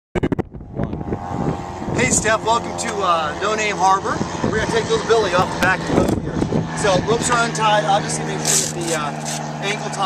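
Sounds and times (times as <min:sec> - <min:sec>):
wind noise on microphone: 0:00.1 - 0:07.8.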